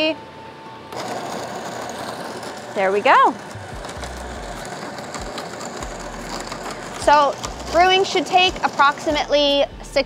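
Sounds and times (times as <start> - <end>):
coffee grinder grinding beans: 0.9 - 10.0.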